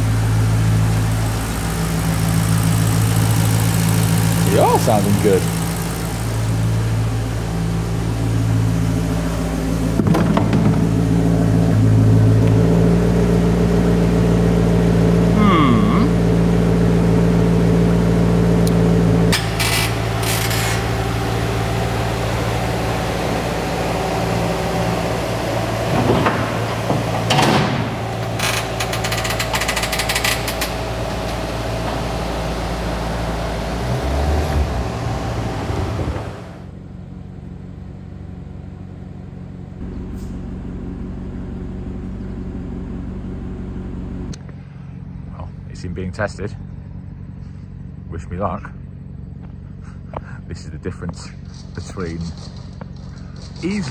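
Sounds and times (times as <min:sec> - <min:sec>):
steady hum: 0:00.0 - 0:33.8
car engine idling: 0:00.0 - 0:53.9.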